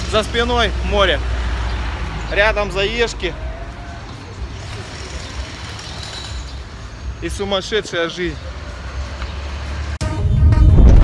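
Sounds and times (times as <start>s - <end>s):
busy road traffic: 0.0s - 11.0s.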